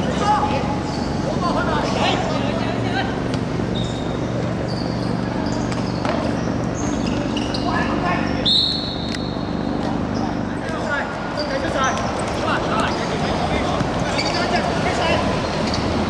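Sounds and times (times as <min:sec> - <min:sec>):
players calling out: 0:00.0 - 0:16.0
rubber soles squeaking: 0:00.0 - 0:16.0.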